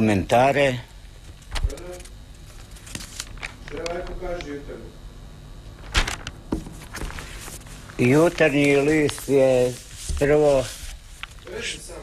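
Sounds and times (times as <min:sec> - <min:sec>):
paper rustling: 0:01.9 - 0:03.9, 0:05.8 - 0:11.8.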